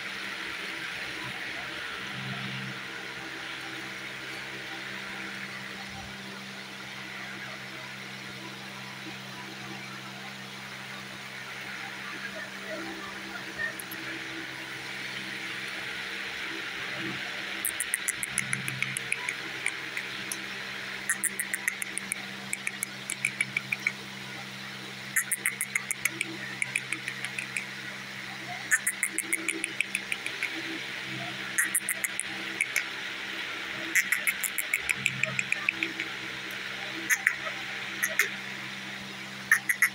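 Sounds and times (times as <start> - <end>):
steady low hum: 0.0 - 39.9
parakeet clicking: 17.6 - 20.4, 21.1 - 23.9, 25.2 - 27.7, 28.7 - 30.6, 31.6 - 32.9, 33.9 - 38.3, 39.5 - 39.9.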